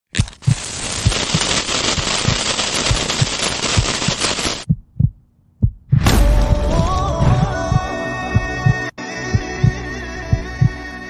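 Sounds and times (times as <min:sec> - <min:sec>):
loud hiss: 0:00.4 - 0:04.6
low regular thumps: 0:04.6 - 0:10.8.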